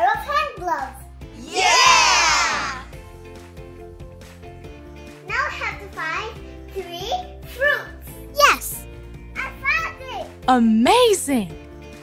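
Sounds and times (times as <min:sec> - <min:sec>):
background music: 0:00.0 - 0:12.0
child speaking excitedly: 0:05.3 - 0:08.8, 0:09.4 - 0:10.3.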